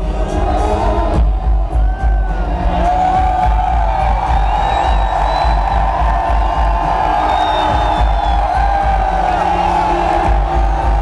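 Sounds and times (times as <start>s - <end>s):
crowd cheering: 0.0s - 11.0s
loud music over a concert pa: 0.0s - 11.0s.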